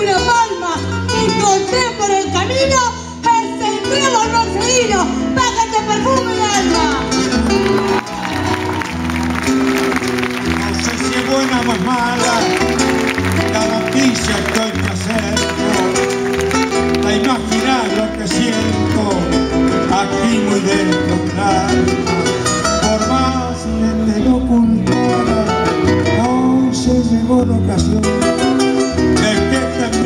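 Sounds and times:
acoustic guitars playing: 0.0 - 30.0.

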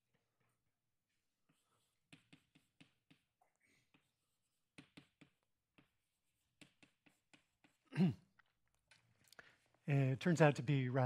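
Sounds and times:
chalk tapping on blackboard: 1.3 - 7.9.

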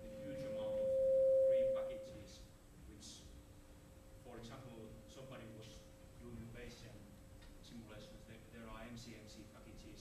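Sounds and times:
microphone feedback ringing: 0.0 - 2.1.

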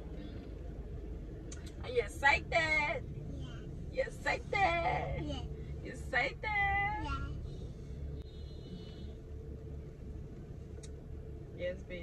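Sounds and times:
car cabin rumble and hum: 0.0 - 12.0.

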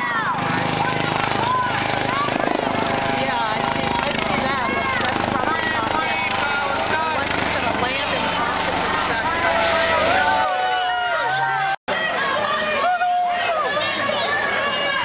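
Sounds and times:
crowd talking: 0.0 - 15.0
helicopter flying overhead: 0.0 - 15.0.

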